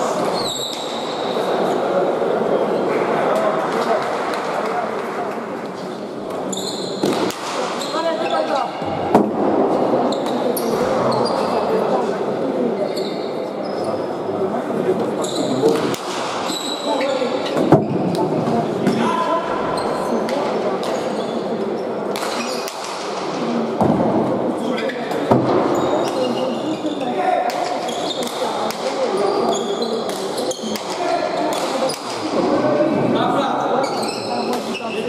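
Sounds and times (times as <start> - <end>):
crowd chatter: 0.0 - 35.0.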